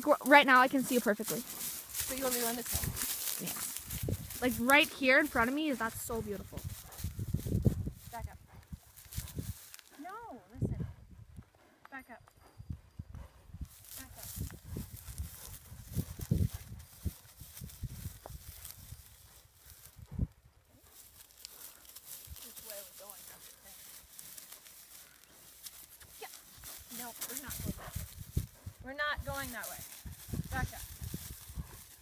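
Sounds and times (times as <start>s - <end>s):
horse stepping on stubble: 0.0s - 8.1s, 20.8s - 28.3s.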